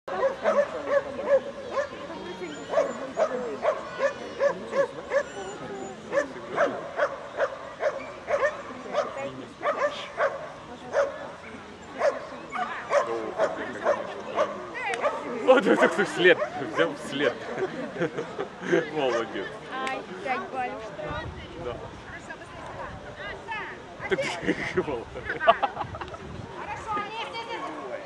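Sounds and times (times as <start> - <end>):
dog yipping and barking: 0.2 - 10.4.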